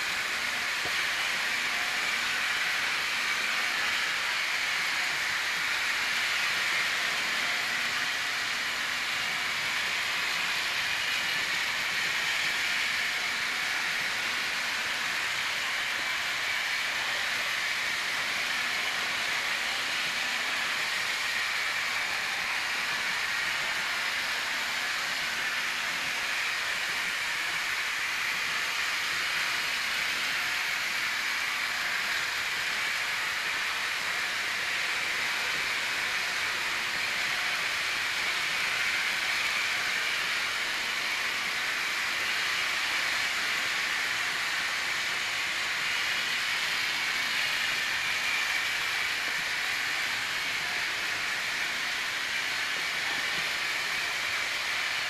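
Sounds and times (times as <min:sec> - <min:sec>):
model trains whirring on track: 0:00.0 - 0:55.0.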